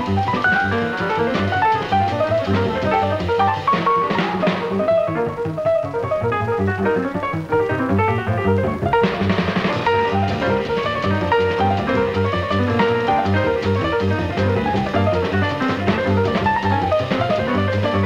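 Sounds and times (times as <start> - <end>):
double bass: 0.0 - 18.0
jazz piano runs: 0.0 - 18.0.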